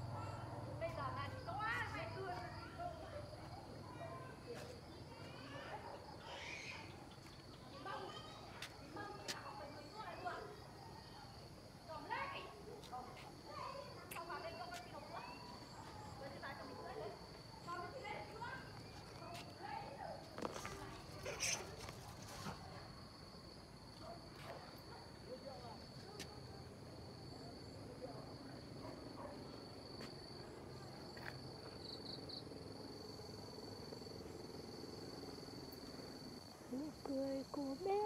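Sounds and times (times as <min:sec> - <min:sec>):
insect high-pitched trill: 0:06.2 - 0:11.4, 0:31.1 - 0:38.0.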